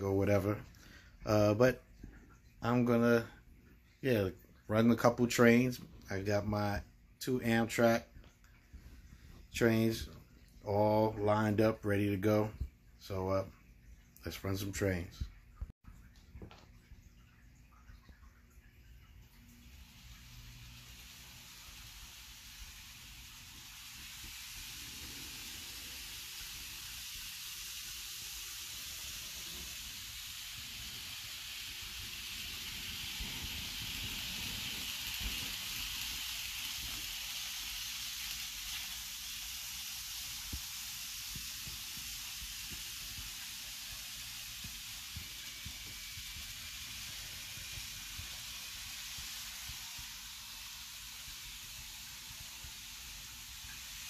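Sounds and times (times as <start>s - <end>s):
model trains whirring on track: 19.9s - 54.0s.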